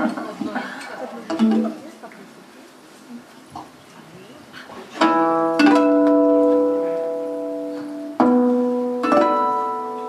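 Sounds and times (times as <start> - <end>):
acoustic guitar chord ringing: 5.0 - 10.0.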